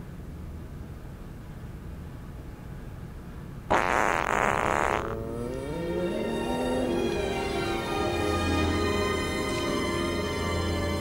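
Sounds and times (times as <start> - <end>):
raspy fart sound effect: 3.7 - 7.0.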